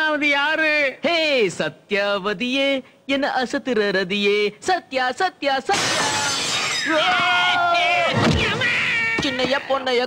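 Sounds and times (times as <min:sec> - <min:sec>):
crash: 0:05.7 - 0:07.0.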